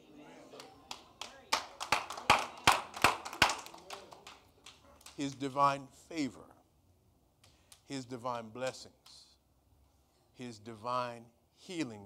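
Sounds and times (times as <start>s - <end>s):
hand claps: 0.6s - 5.5s.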